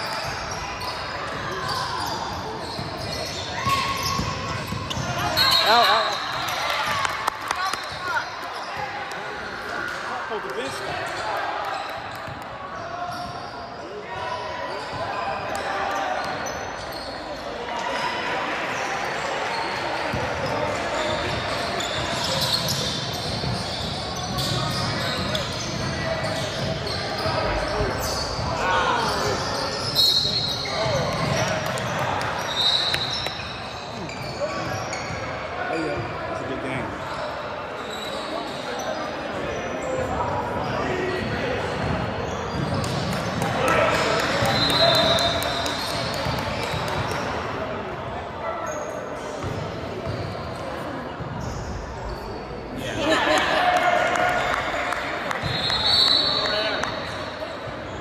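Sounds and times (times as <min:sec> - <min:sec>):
sneaker squeaks: 0:00.0 - 0:52.8, 0:54.4 - 0:58.0.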